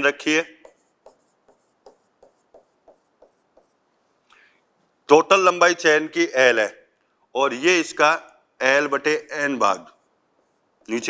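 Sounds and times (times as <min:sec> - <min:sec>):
pen tapping: 0:00.6 - 0:03.8
pen strokes on writing board: 0:00.6 - 0:04.0.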